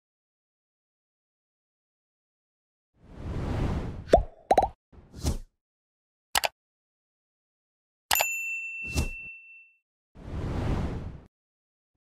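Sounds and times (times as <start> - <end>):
notification bell ding: 8.1 - 9.8
whoosh: 10.2 - 11.3.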